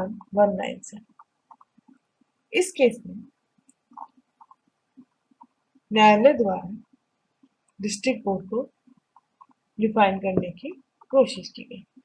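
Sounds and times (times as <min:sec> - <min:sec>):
woman lecturing: 0:00.0 - 0:01.0, 0:05.9 - 0:06.8, 0:07.8 - 0:08.7, 0:09.8 - 0:11.8.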